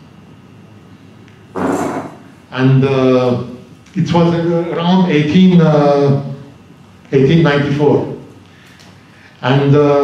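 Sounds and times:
lecture hall room tone: 0.0s - 10.0s.

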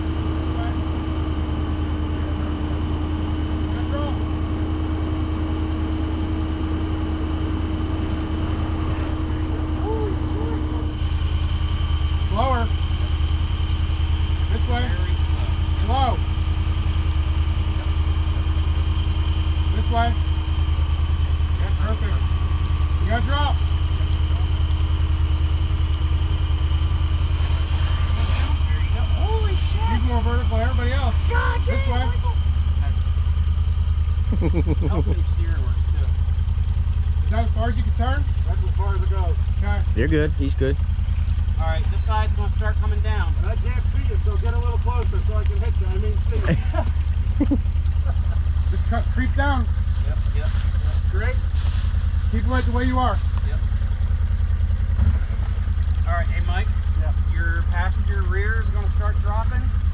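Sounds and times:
utility vehicle engine idling: 0.0s - 59.9s.

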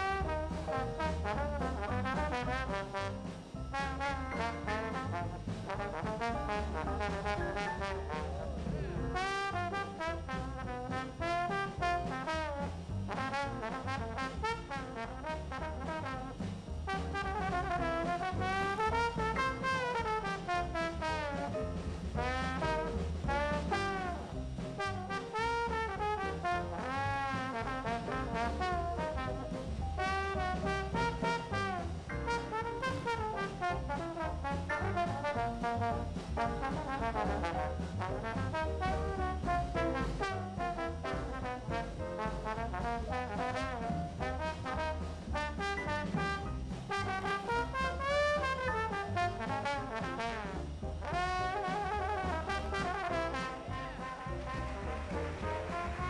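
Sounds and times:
jazz band bass and drums: 0.0s - 56.0s
trombone solo: 0.0s - 56.0s.

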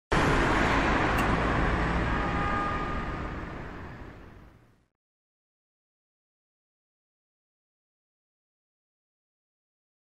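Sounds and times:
rush of noise: 0.1s - 4.9s.

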